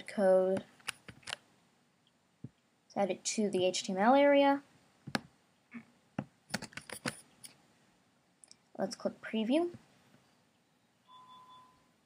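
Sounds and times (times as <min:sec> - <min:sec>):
keyboard key presses: 0:06.5 - 0:07.2.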